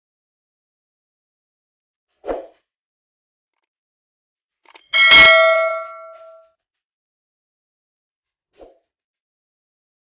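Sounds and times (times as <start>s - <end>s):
metal bowl ringing: 5.0s - 6.4s.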